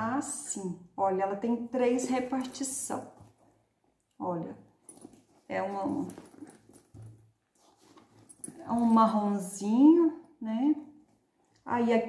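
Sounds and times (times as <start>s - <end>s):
leather bag rustling: 4.7s - 9.4s.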